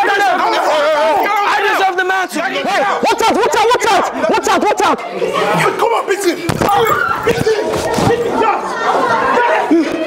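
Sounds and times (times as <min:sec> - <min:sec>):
crowd of students chattering: 0:00.1 - 0:10.0.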